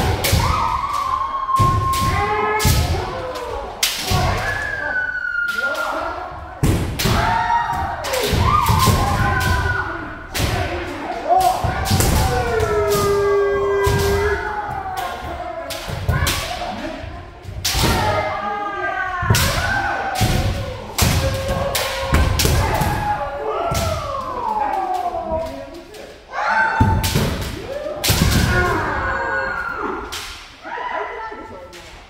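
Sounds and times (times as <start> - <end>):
people shouting: 0.0 - 31.6.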